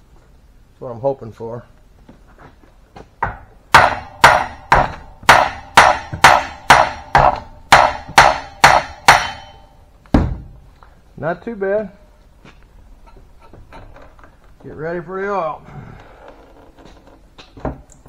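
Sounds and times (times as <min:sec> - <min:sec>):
hammer blows on metal: 0:03.2 - 0:09.8
heavy dull thud: 0:03.2 - 0:10.6.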